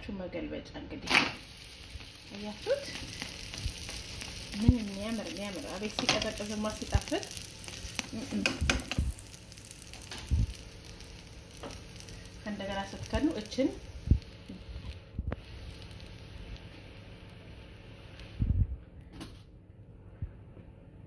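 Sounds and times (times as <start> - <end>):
dough sizzling in frying pan: 1.0 - 18.5.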